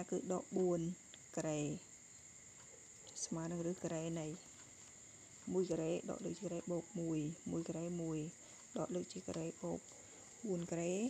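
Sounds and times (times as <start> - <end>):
person talking: 0.0 - 1.8, 3.2 - 4.5, 5.4 - 9.8, 10.4 - 11.0.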